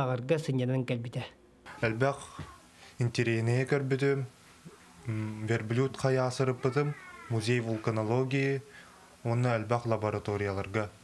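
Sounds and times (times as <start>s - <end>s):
young man speaking: 1.7s - 4.3s, 5.0s - 11.0s.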